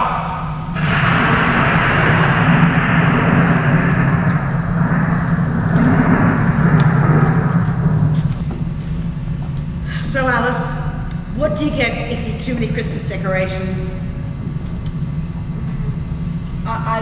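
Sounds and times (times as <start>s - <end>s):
low rumble: 0.0s - 17.0s.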